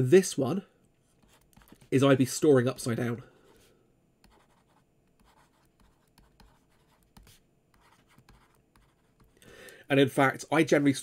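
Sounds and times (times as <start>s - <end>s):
stylus scratching on tablet: 1.1s - 3.6s, 4.2s - 9.4s.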